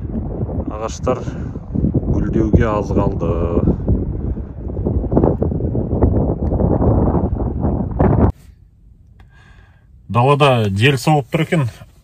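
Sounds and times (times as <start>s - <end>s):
wind buffeting microphone: 0.0s - 10.1s.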